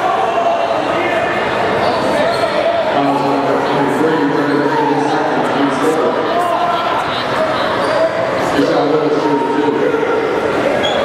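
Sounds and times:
spectators chattering and calling out: 0.0 - 11.0.

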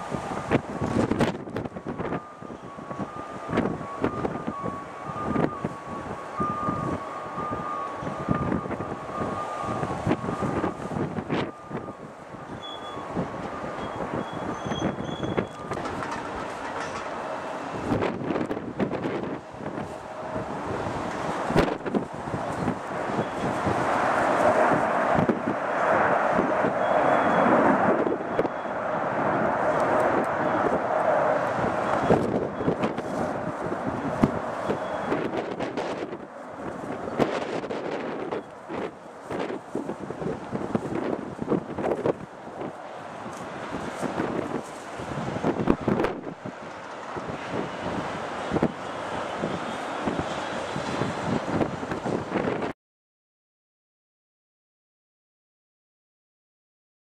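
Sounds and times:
jet engines rumbling and whining: 0.0 - 52.7
wind buffeting microphone: 0.0 - 52.8.

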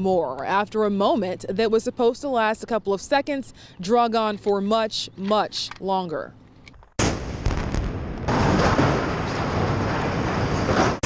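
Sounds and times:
rumbling demolition blast: 7.0 - 11.0.

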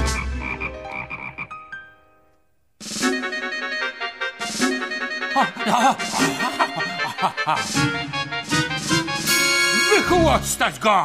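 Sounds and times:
cartoon frogs croaking: 0.0 - 1.7
orchestral music: 2.8 - 10.9.

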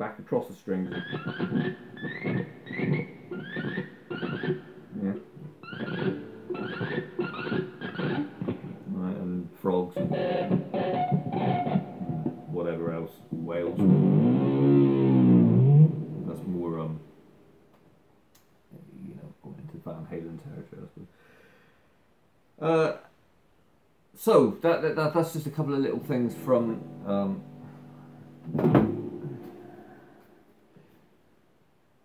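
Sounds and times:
electric guitar with effects: 0.8 - 9.1, 10.0 - 17.1, 25.7 - 31.0.

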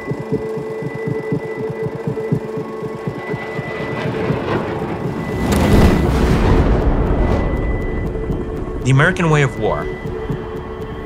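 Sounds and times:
steady hum: 0.0 - 11.0
deep boom: 4.3 - 8.9.

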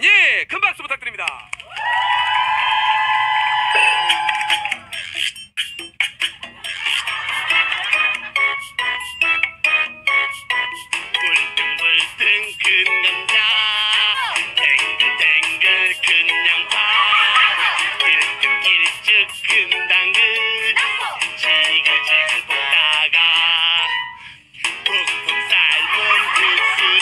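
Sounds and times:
upbeat backing music: 3.7 - 27.0.

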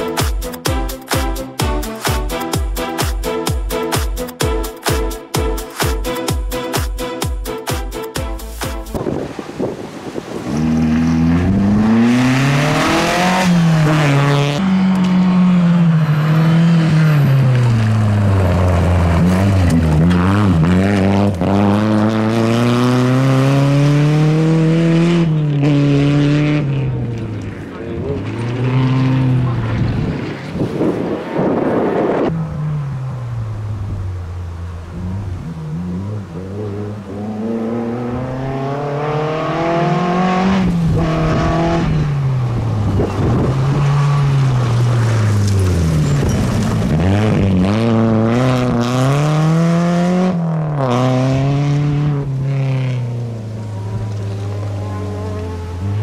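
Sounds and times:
rally car engine revving: 8.9 - 56.0.

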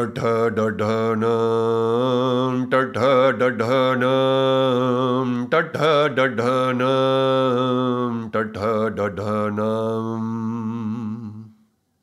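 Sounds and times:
man chanting in monotone: 0.0 - 11.6.

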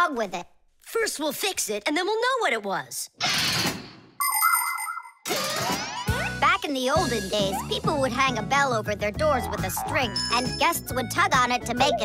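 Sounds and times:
bright ringing chime jingle: 4.2 - 5.2.

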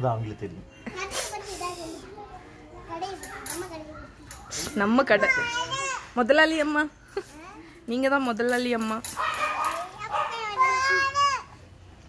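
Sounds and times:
children talking: 0.7 - 8.1, 9.0 - 11.9
children calling out: 9.5 - 11.7.

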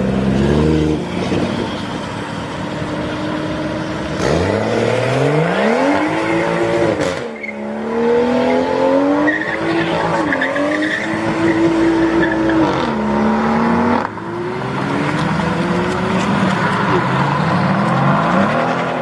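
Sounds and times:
car engine revving: 4.0 - 19.0
tyres spinning and squealing: 8.5 - 12.9.

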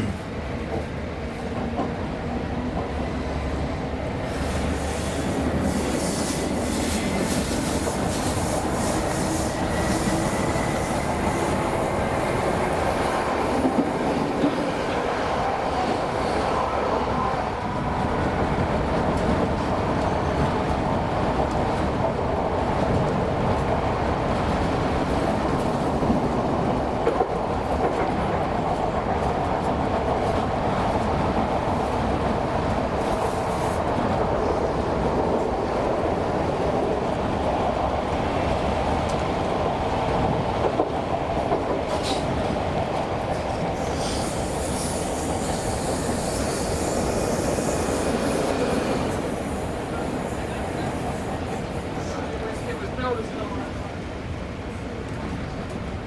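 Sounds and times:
train wheels rumbling on rail: 0.0 - 56.0.

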